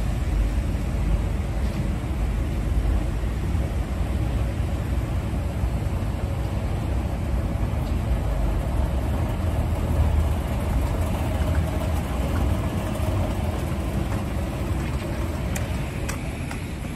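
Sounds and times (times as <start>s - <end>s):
escalator mechanical rumble: 0.0s - 16.9s.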